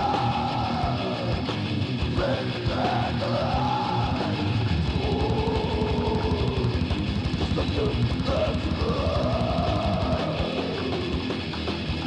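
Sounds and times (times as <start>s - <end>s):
distorted guitars: 0.0s - 12.0s
fast dense drumming: 0.0s - 12.0s.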